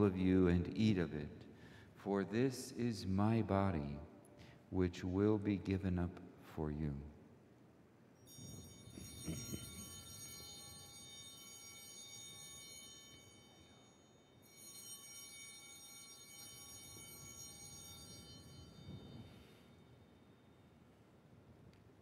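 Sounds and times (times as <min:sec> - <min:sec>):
faint altar bell ringing: 0:08.2 - 0:21.2.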